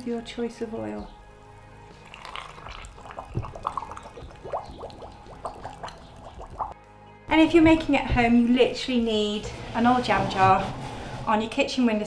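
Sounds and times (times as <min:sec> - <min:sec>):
oil glugging into jar: 0:01.9 - 0:06.8
short rising bloops: 0:02.4 - 0:06.8.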